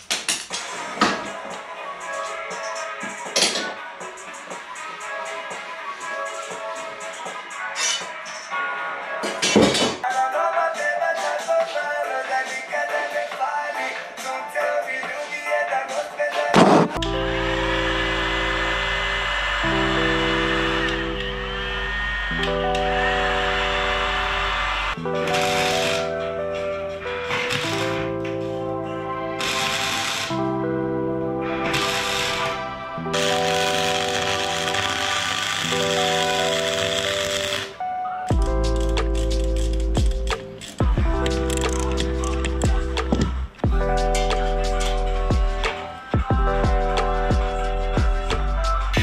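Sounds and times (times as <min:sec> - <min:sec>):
background music with sustained chords: 0:00.6 - 0:49.0
heavy bass: 0:38.3 - 0:49.0.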